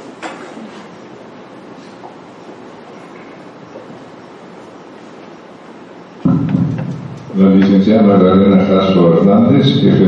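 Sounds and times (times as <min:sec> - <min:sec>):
steady room hiss: 0:00.0 - 0:10.0.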